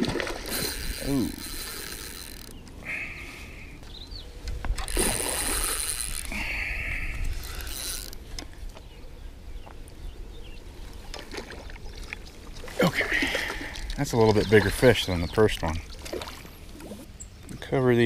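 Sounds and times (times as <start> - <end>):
water splashing: 0.0 - 2.4, 4.8 - 6.5, 11.1 - 17.0
fishing reel being cranked: 0.4 - 2.6, 4.7 - 8.2.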